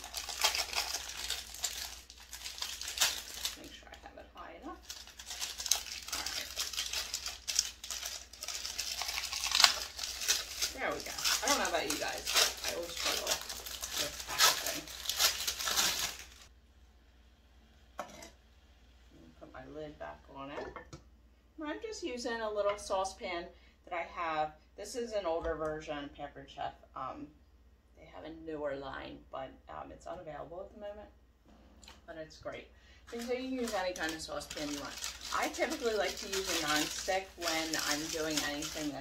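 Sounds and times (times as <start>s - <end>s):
plastic wrapper crinkling: 0.0s - 16.5s, 33.1s - 39.0s.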